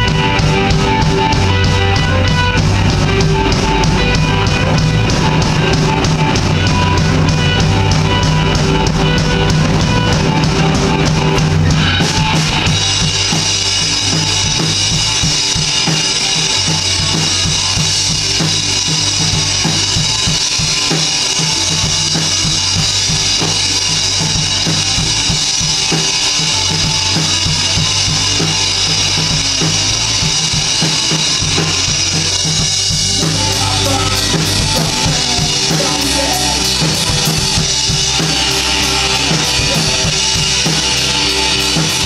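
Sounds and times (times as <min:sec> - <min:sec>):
drum kit: 0:00.0 - 0:42.0
rock band playing: 0:00.0 - 0:42.0.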